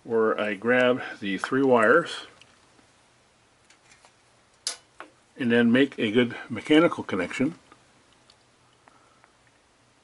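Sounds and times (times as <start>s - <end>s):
faint ticks: 7.7s - 9.6s.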